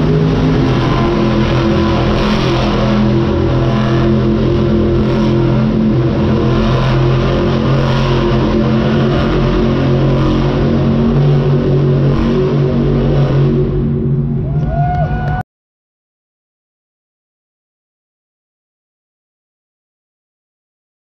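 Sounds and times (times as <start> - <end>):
monster truck engines revving: 0.0 - 15.4.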